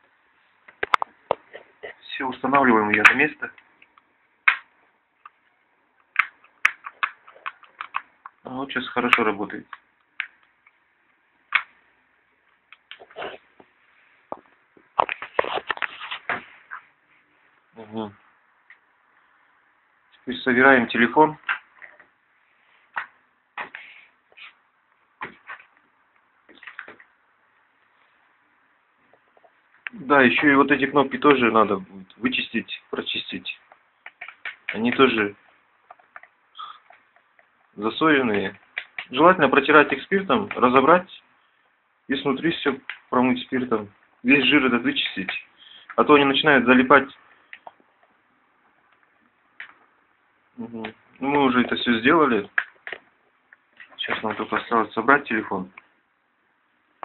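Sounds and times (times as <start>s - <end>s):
plastic parts clicking and knocking: 2.9s - 8.4s, 33.6s - 35.0s, 52.5s - 54.7s
plastic parts clicking: 6.0s - 8.4s.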